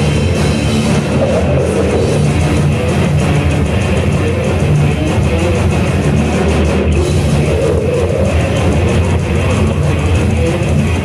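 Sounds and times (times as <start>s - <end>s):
bass guitar: 0.0s - 11.0s
distorted electric guitars: 0.0s - 11.0s
drums: 0.0s - 11.0s.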